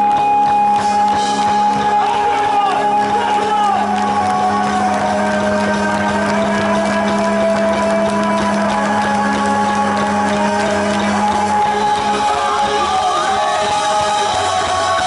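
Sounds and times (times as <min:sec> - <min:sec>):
rock band holding ringing chord: 0:00.8 - 0:15.0.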